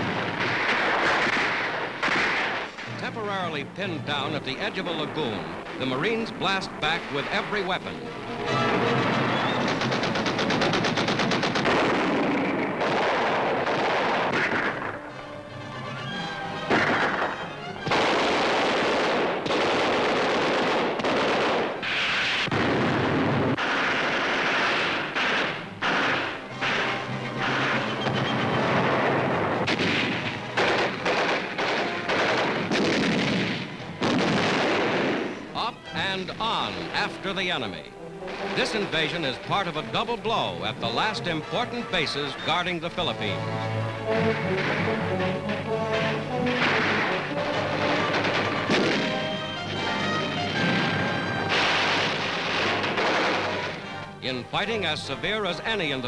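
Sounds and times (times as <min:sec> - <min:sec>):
single gunshots: 0:00.0 - 0:03.4, 0:08.7 - 0:15.1, 0:16.6 - 0:37.1, 0:44.1 - 0:49.3, 0:50.6 - 0:54.0
heavy blasts: 0:00.0 - 0:55.9
machine-gun bursts: 0:09.0 - 0:14.8.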